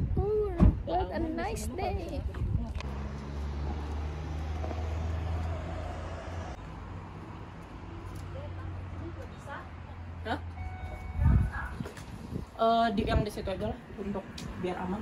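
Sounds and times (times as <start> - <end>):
vehicle engine humming: 2.7 - 11.7.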